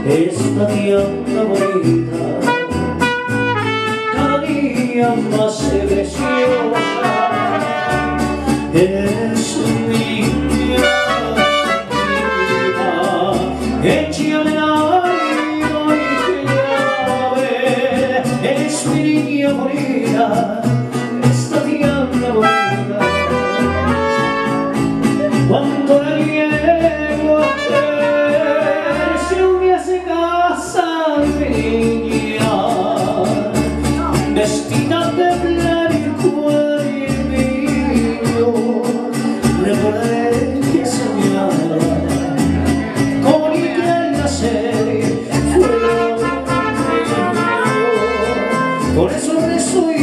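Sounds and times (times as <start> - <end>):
man singing into microphone: 0.0 - 50.0
trumpet: 1.5 - 4.6, 6.2 - 8.5, 10.7 - 13.3, 14.9 - 17.5, 22.3 - 24.9, 27.4 - 29.7, 45.5 - 49.2
rhythm accompaniment: 10.7 - 13.8, 22.3 - 25.9.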